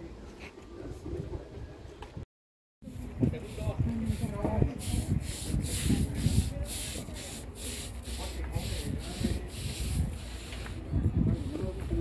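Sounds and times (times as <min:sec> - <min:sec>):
broom scrubbing wet concrete: 0:02.8 - 0:12.0.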